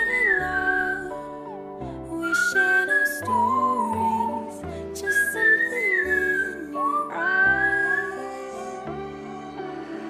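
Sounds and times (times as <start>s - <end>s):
person whistling a melody: 0.0s - 1.6s, 2.2s - 8.8s.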